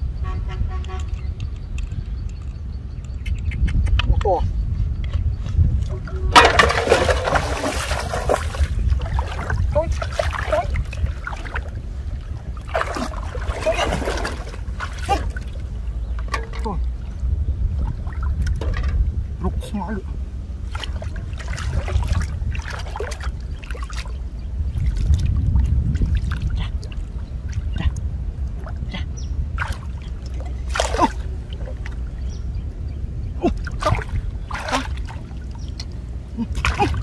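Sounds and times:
low rumble: 0.0 - 37.0
wind on microphone: 0.0 - 37.0
water sloshing: 6.0 - 19.2, 20.5 - 32.6, 33.4 - 37.0.

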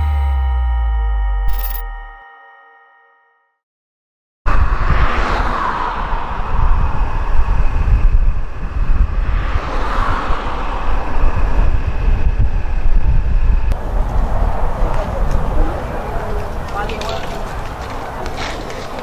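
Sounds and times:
cars passing on highway: 4.5 - 19.0
wind rumbling on microphone: 4.5 - 19.0.

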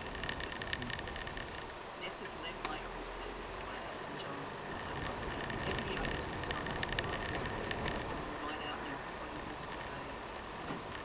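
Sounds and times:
car engine and tyre noise: 0.0 - 11.0.

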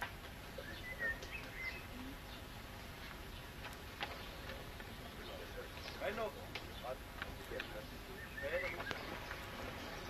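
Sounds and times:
low outdoor hush: 0.0 - 10.0
faint bird chirps: 0.5 - 2.6, 3.2 - 10.0.

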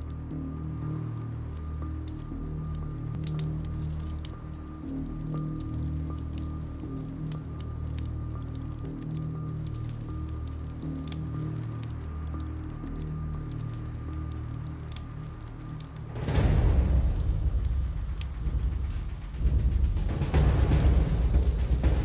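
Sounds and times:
campfire crackling: 0.0 - 22.0
slow film score: 0.0 - 22.0.

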